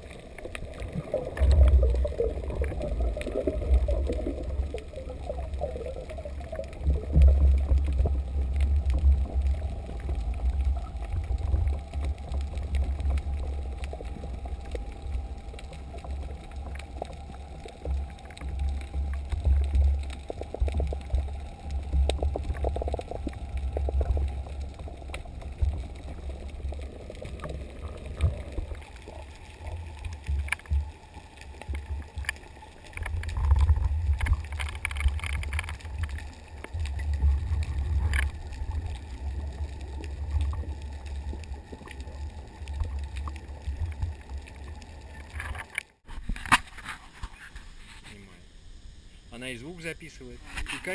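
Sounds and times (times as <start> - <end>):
faint clicks: 0.0 - 46.6
underwater water rumble: 0.0 - 50.9.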